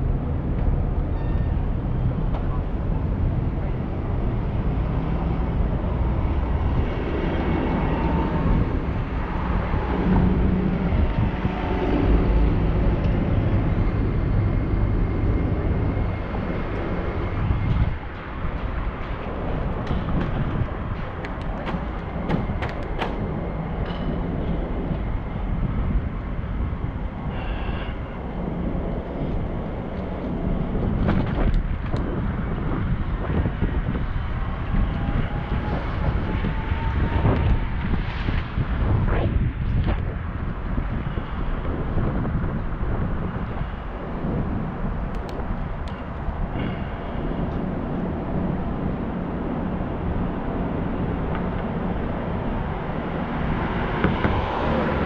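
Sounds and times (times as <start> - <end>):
wind rushing over camera: 0.0 - 55.0.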